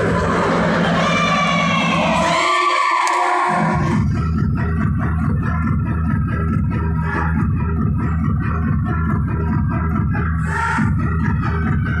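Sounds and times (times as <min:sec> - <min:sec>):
dance-fitness music with keyboard: 0:03.4 - 0:12.0.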